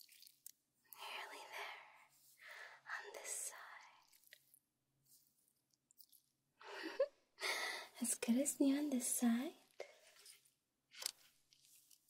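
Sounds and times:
woman whispering: 1.0 - 2.1, 2.8 - 4.2, 7.9 - 10.0.

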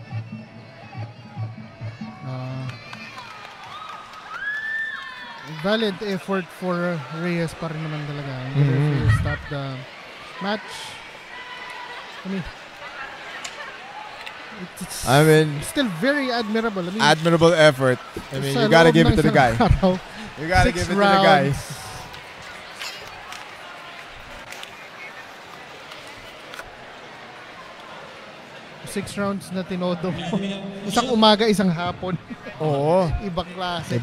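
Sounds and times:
man saying a word: 8.5 - 9.6.

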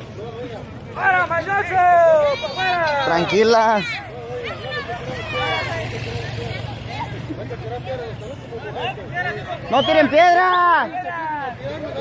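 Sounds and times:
crowd shouting: 0.3 - 7.3, 8.6 - 12.0.

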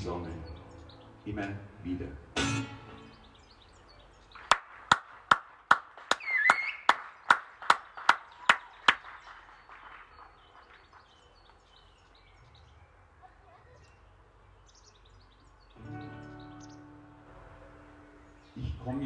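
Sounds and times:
hands clapping: 4.4 - 11.6
faint bird chirps: 6.2 - 7.3, 8.2 - 18.8.

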